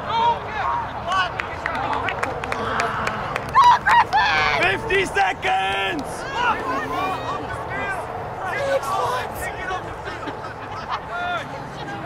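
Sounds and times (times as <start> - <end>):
people shouting: 2.6 - 10.0.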